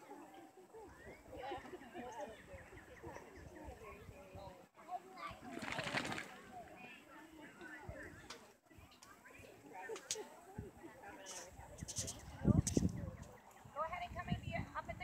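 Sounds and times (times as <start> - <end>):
faint talking of people: 0.0 - 15.0.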